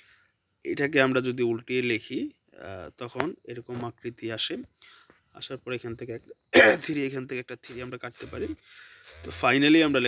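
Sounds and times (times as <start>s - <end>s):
man speaking: 0.7s - 4.7s, 5.4s - 8.6s, 9.2s - 10.0s.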